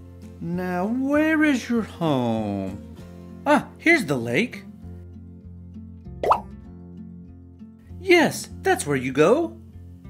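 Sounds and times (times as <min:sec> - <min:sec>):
light background music: 0:00.0 - 0:10.0
cartoon plop with upward pitch sweep: 0:06.2 - 0:06.5.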